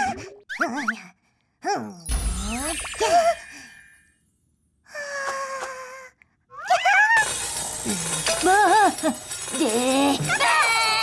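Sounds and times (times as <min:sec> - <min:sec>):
cartoon magic poof: 0:02.1 - 0:03.5
grindstone grinding metal: 0:07.2 - 0:11.0.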